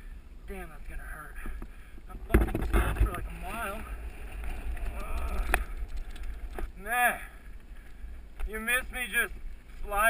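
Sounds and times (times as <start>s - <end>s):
bike rolling on dirt trail: 0.8s - 10.0s.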